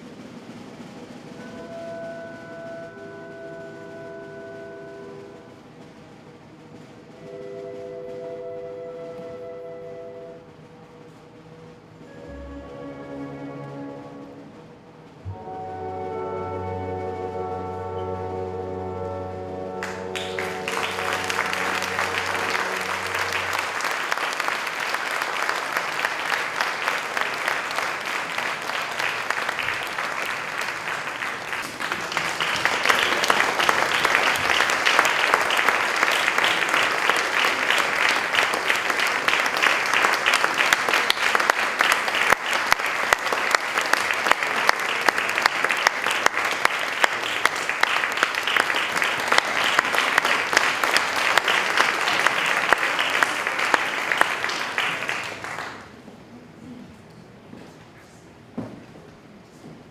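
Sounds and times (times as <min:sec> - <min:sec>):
audience applauding: 0:19.7 - 0:56.1.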